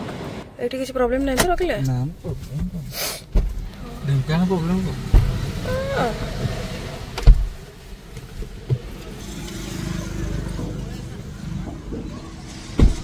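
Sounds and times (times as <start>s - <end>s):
car cabin rumble: 1.0s - 9.3s
loud thump: 5.1s - 5.5s.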